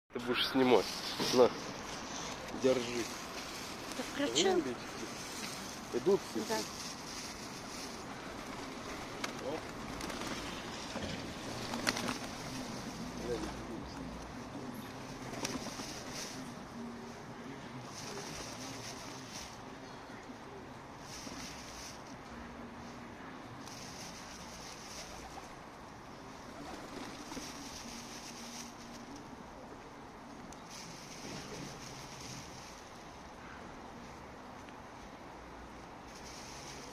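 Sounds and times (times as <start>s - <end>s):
outdoor background noise: 0.1s - 36.9s
steady background hiss: 0.1s - 36.9s
pigeons flapping wings: 2.6s - 13.8s, 15.0s - 16.5s, 17.8s - 19.6s, 23.6s - 25.6s, 26.4s - 29.4s, 30.6s - 32.9s, 36.1s - 36.9s.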